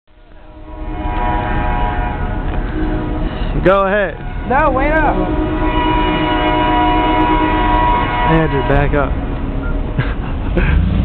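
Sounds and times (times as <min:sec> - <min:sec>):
engine at high revs: 0:10.6 - 0:11.0.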